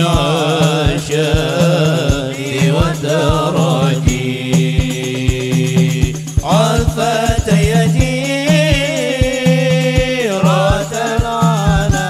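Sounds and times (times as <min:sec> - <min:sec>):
frame drums beating: 0:00.0 - 0:12.0
men singing devotional melody: 0:00.0 - 0:12.0.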